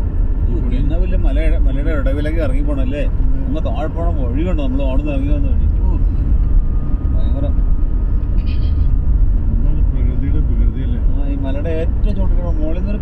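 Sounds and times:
vehicle rumbling on rough road: 0.0s - 13.0s
people talking: 8.4s - 8.9s, 9.5s - 13.0s.

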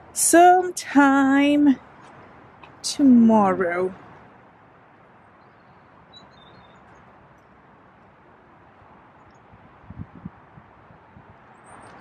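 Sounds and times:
high bird chirps: 5.4s - 6.8s.

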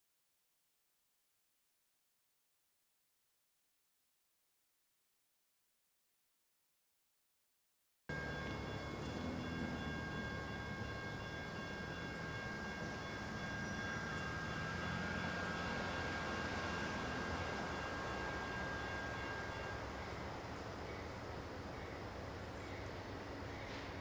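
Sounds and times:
faint high-pitched tones: 8.1s - 24.0s.

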